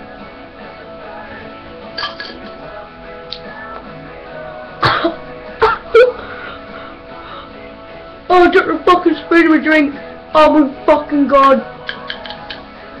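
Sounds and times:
background music: 0.0 - 13.0
person coughing and spluttering: 2.0 - 2.4, 4.8 - 6.0.

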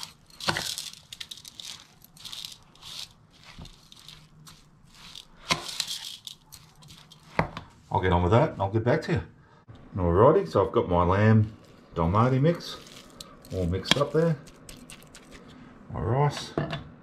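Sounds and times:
fork scraping through food in bowl: 0.0 - 7.4.

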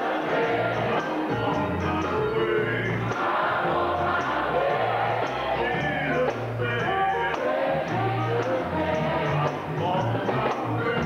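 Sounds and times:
band playing: 0.0 - 11.0
voices singing gospel: 0.0 - 11.0
held bass notes: 0.4 - 11.0.

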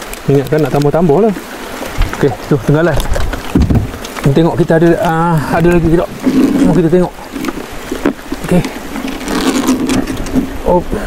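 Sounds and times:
water sloshing against boat: 0.0 - 11.0
short knocks: 3.1 - 4.1.

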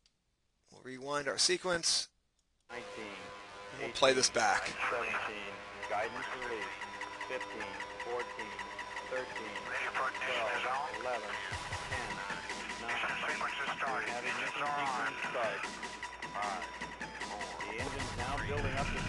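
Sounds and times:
background music with held tones: 2.7 - 19.0.

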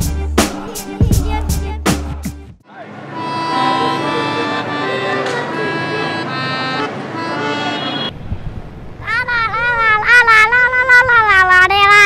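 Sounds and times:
boy singing a wavering note: 9.0 - 12.0.

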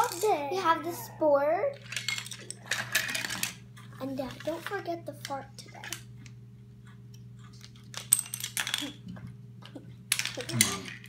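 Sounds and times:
low steady hum: 0.0 - 11.0
objects clattering on tabletop: 1.8 - 4.7, 7.9 - 9.3.

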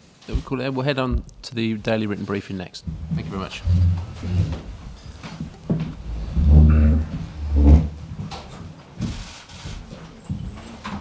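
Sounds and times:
chair scraping on floor: 3.0 - 9.8.

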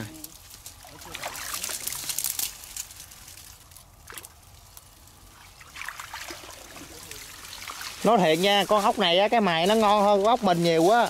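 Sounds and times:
water splashing and trickling: 0.0 - 11.0.

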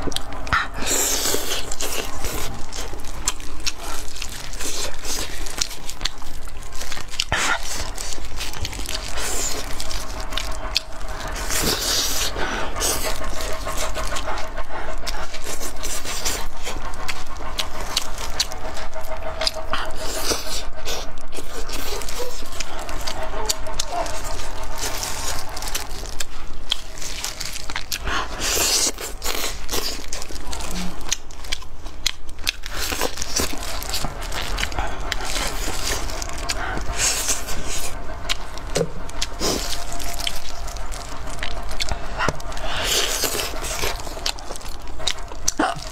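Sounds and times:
chewing meat: 0.0 - 45.9.

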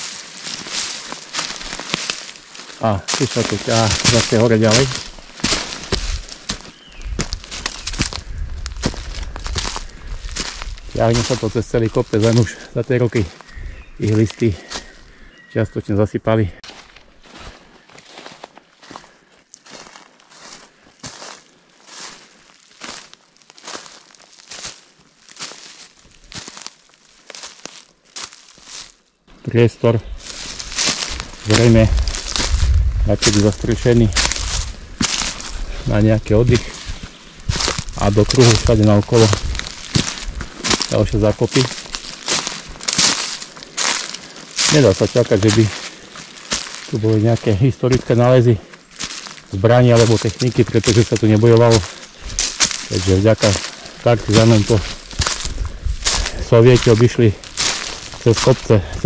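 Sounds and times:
footsteps in dry leaves: 0.0 - 15.5, 16.5 - 59.0.

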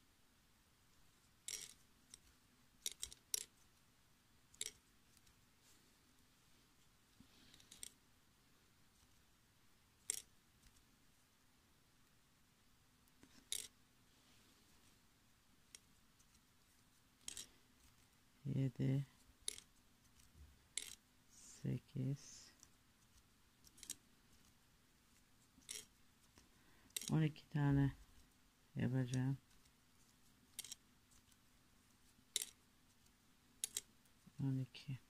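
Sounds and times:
tatting shuttle clicks: 1.5 - 3.5, 19.4 - 21.0, 26.9 - 27.2.

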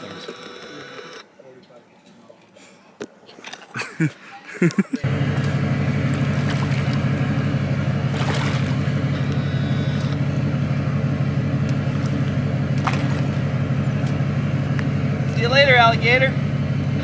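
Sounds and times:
engine idling: 4.4 - 17.0
splash or knock: 6.1 - 7.0, 8.1 - 8.8, 12.8 - 13.4.

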